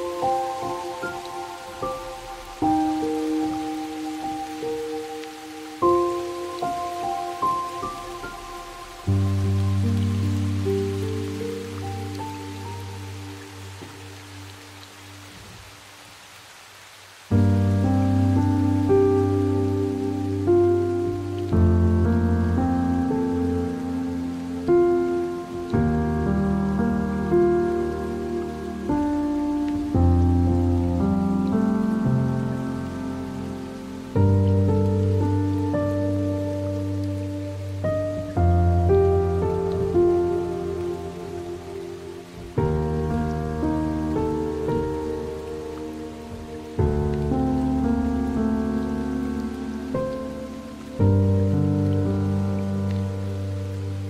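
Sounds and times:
slow piano chords: 0.0s - 54.0s
steady rain: 0.0s - 54.0s.

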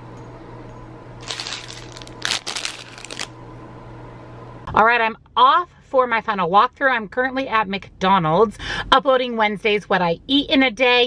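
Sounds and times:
low hum: 0.0s - 4.7s
items rustling into handbag: 1.2s - 3.3s.

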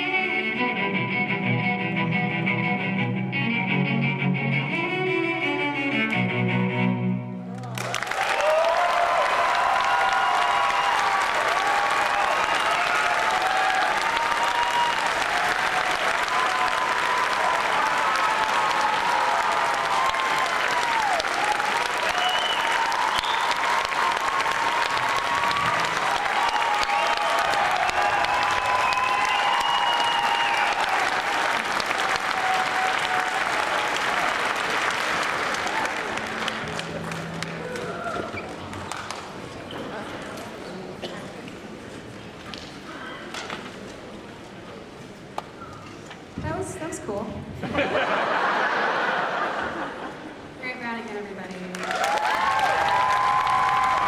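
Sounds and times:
audience applauding: 7.5s - 40.0s, 47.8s - 50.5s, 51.7s - 54.0s
cheering and whooping voices: 7.6s - 38.8s, 51.7s - 54.0s.

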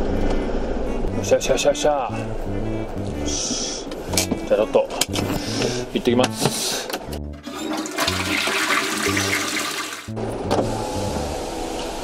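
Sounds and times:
toilet flushing: 7.4s - 10.2s.

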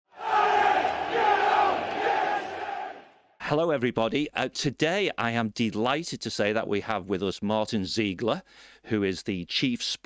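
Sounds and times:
football crowd shouting: 0.1s - 3.2s.

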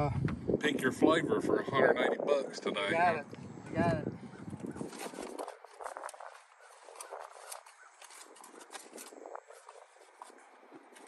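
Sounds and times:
rummaging through boxes and packaging: 4.7s - 11.0s.

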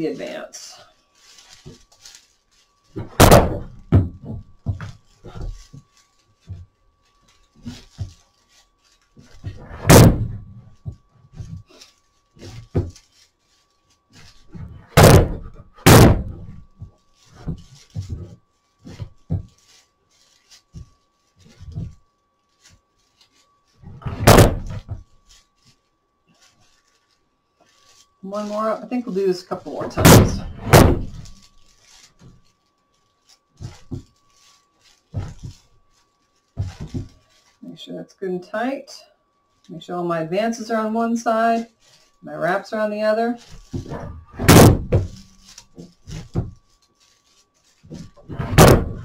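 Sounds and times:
broom straw rustling: 0.0s - 49.0s
loud thunks: 3.0s - 5.6s, 9.4s - 11.0s, 14.6s - 16.7s, 23.9s - 25.0s, 29.8s - 31.4s, 43.6s - 45.4s, 47.9s - 49.0s.

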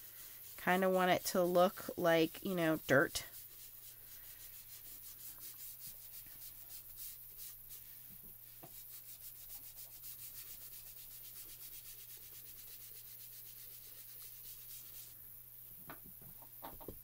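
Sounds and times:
foam tool rubbing on card: 0.0s - 15.2s.

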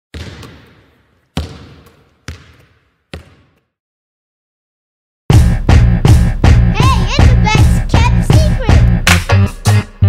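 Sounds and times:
basketball bouncing on hard court: 0.1s - 3.7s.

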